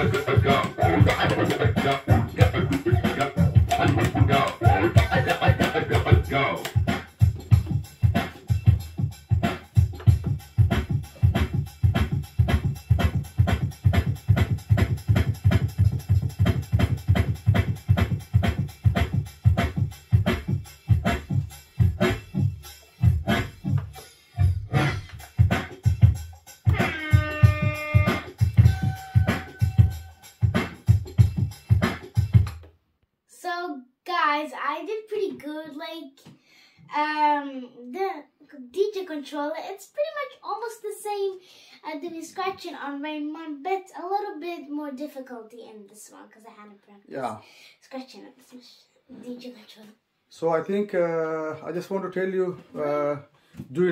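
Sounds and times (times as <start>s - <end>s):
child speaking: 0.0s - 6.0s, 33.3s - 36.3s, 36.9s - 50.0s
dance track with scratching: 0.0s - 22.4s, 23.0s - 32.5s.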